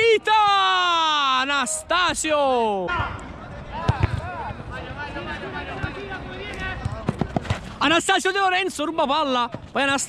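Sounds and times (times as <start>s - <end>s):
footballers shouting: 0.0s - 7.3s.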